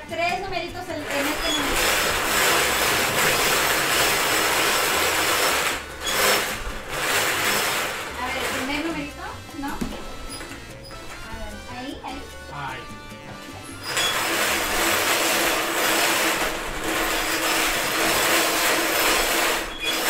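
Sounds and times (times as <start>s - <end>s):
balls rattling in bingo cage: 1.0s - 9.1s, 13.8s - 20.0s.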